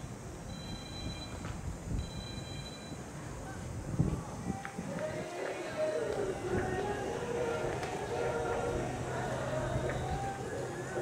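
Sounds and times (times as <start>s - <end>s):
long high signal tone: 0.5s - 3.1s.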